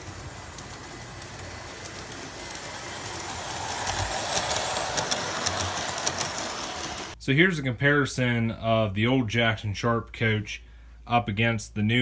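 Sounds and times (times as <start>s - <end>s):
model train rolling on track: 0.0s - 7.2s
wheels clicking on rails: 0.0s - 7.2s.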